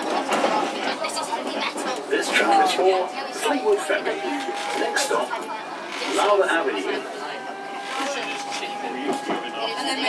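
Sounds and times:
passengers chattering: 0.0 - 10.0
tram running noise: 0.0 - 10.0.

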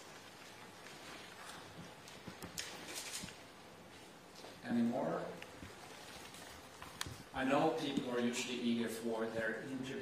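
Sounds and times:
brief rustle: 0.9 - 3.4.

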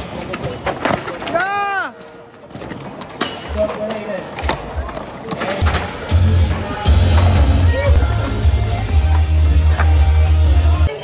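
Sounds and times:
skateboards rolling on concrete: 0.0 - 11.0
bass-heavy music: 5.6 - 11.0.

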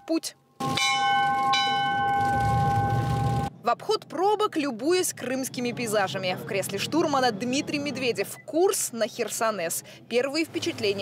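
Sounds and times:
ship's bell ringing: 0.0 - 3.5.

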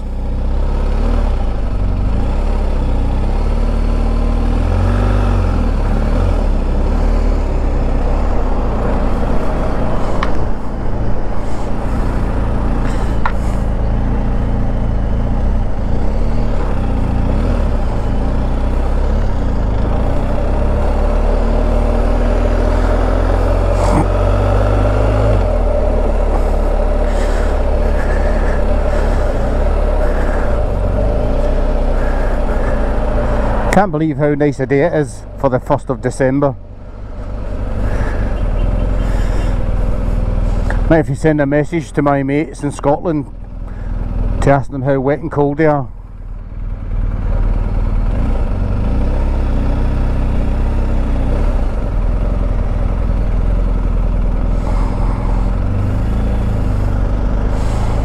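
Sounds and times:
motorcycle engine rumbling: 0.0 - 58.0.

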